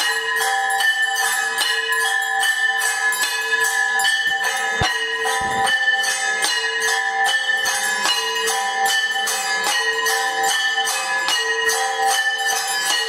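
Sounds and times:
temple bells rung rapidly: 0:00.0 - 0:13.0.

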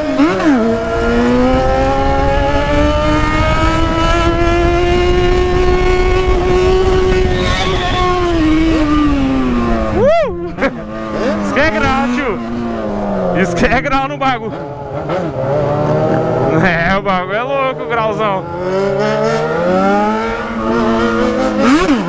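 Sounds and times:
wind on microphone: 0:00.0 - 0:13.5
motorcycle engine at high revs: 0:00.0 - 0:22.0.

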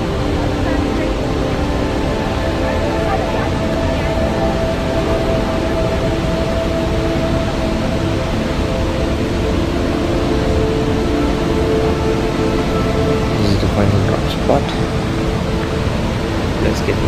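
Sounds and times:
music of long held tones: 0:00.0 - 0:17.0
waterfall rushing: 0:00.0 - 0:17.0.

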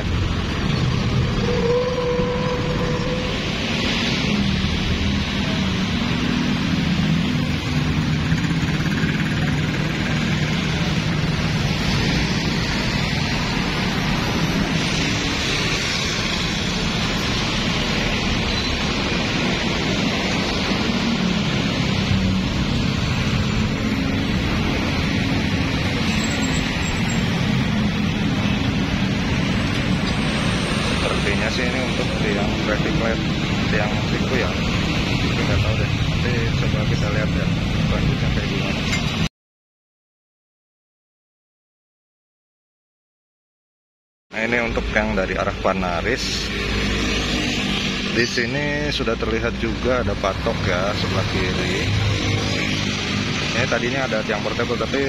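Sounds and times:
road traffic noise: 0:00.0 - 0:39.3, 0:44.3 - 0:55.0.

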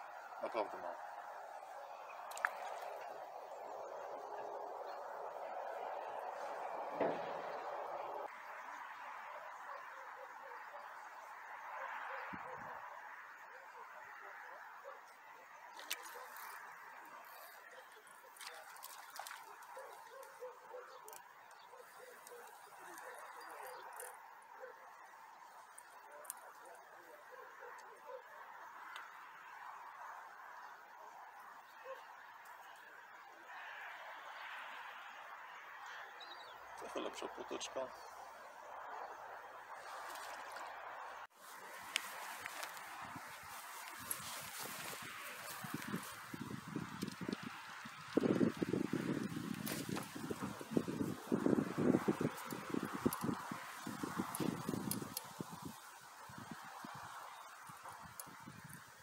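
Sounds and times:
faint outdoor background noise: 0:00.0 - 0:59.0.

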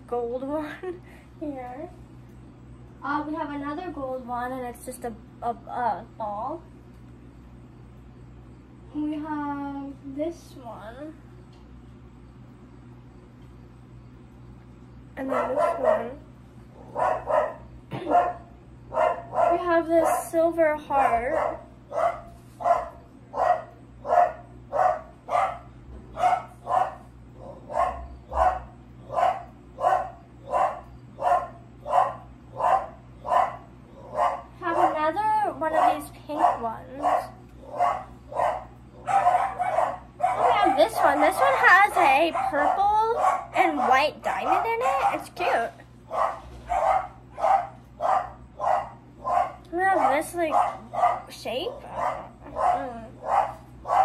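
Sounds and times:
dog barking: 0:15.2 - 0:16.2, 0:16.8 - 0:20.2, 0:21.2 - 0:35.1, 0:35.7 - 0:41.6, 0:42.3 - 0:45.4, 0:46.1 - 0:54.0.

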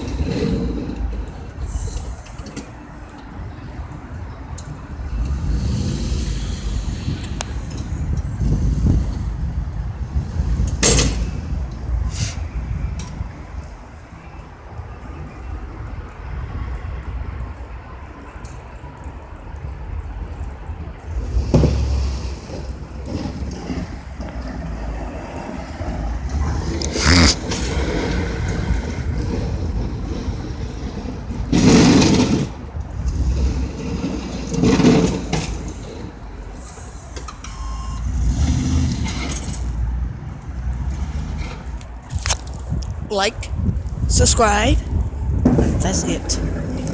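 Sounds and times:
plow blade scraping snow: 0:00.0 - 0:02.0, 0:05.2 - 0:07.5, 0:21.1 - 0:40.1
truck engine rumble: 0:00.0 - 0:46.9.

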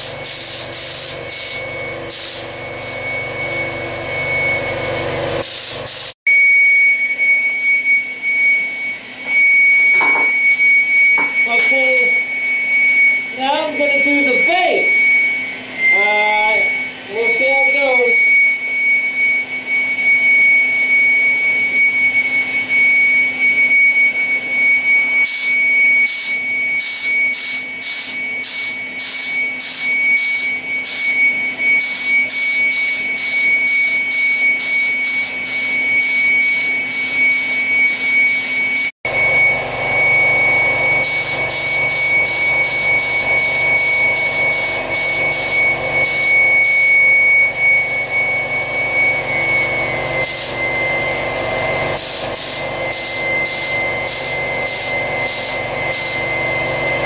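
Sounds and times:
spray gun hissing in bursts: 0:00.0 - 0:02.6, 0:05.4 - 0:06.2, 0:26.1 - 0:31.1, 0:31.8 - 0:38.9, 0:41.0 - 0:46.9, 0:50.2 - 0:50.6, 0:52.0 - 0:56.3
air supply hiss and whine: 0:00.0 - 0:06.2, 0:07.0 - 0:57.0.

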